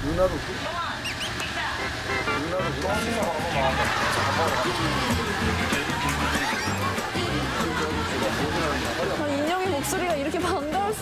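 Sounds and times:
ship machinery hum: 0.0s - 10.6s
voices talking: 0.3s - 11.0s.

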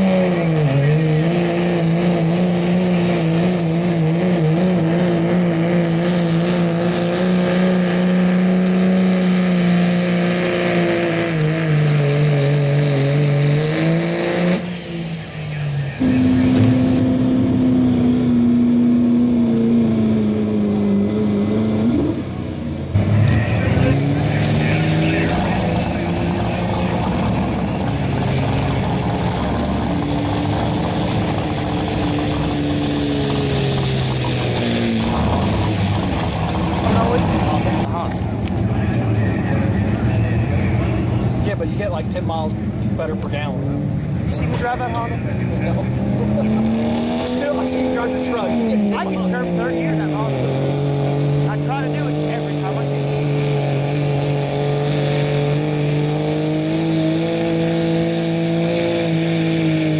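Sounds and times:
diesel truck engines pulling hard: 0.0s - 59.9s
high falling whistle: 14.6s - 17.0s.

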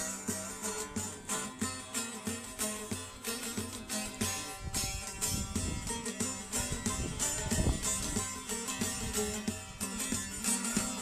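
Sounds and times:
long-necked lute strummed: 0.0s - 11.0s.

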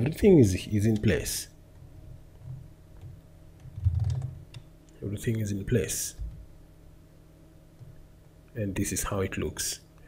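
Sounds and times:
computer keyboard clicks: 2.4s - 4.7s.

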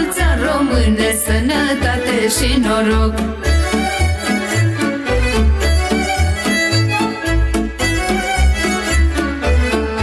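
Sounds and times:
accordion: 0.0s - 10.0s
fiddle melody: 0.0s - 10.0s.

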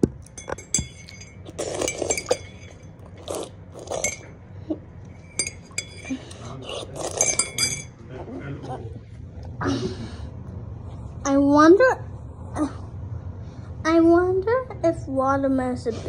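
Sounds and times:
utensil clinking glass: 0.2s - 4.3s, 5.2s - 8.0s.

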